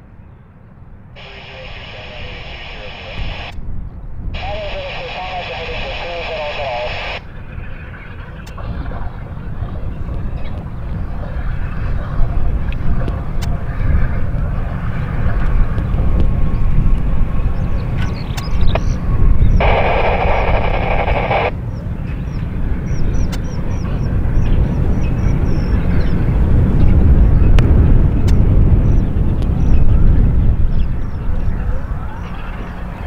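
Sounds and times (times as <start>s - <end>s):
distant jet aircraft rumble: 0.0s - 33.0s.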